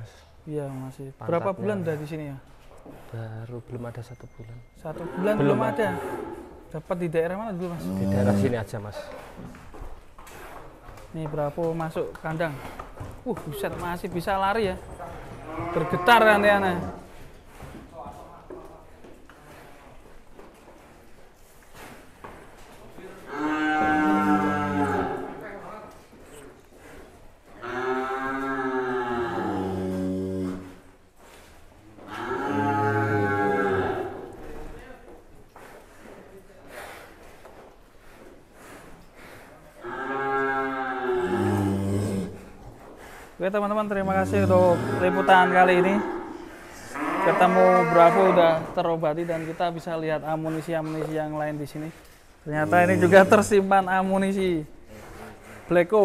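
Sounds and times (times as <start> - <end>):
bull mooing: 5.0 - 6.5, 7.8 - 8.6, 15.4 - 17.0, 23.3 - 25.4, 27.6 - 30.8, 32.1 - 34.3, 39.8 - 42.5, 44.0 - 48.7, 52.6 - 53.6.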